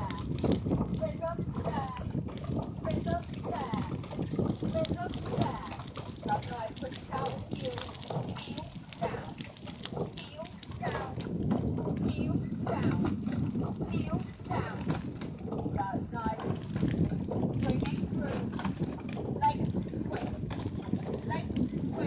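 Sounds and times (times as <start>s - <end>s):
wind rumbling on microphone: 0.0s - 22.0s.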